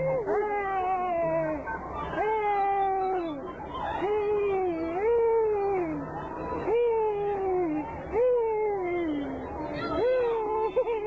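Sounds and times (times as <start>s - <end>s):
high-pitched voice wailing: 6.6s - 11.0s.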